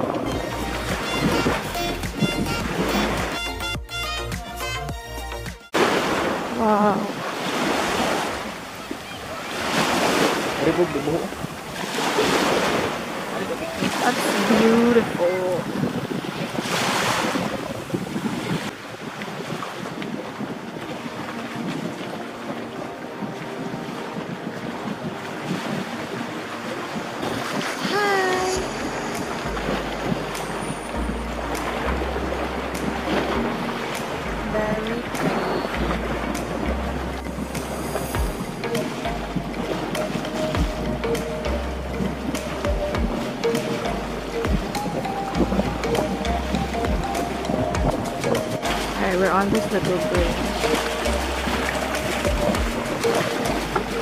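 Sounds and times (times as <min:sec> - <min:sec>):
small waves on sandy shore: 0:00.0 - 0:03.6, 0:05.7 - 0:54.0
wind on microphone: 0:00.0 - 0:03.8, 0:05.8 - 0:54.0
background music with bass line: 0:00.0 - 0:05.8, 0:28.5 - 0:54.0.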